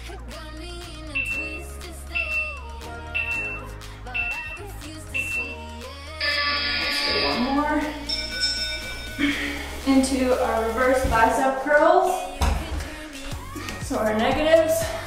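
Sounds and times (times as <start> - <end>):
background pop music: 0.0 - 15.0
long timer tone: 1.1 - 1.6, 2.2 - 10.0
short high beeps: 1.2 - 1.6, 3.2 - 5.6, 6.2 - 9.2.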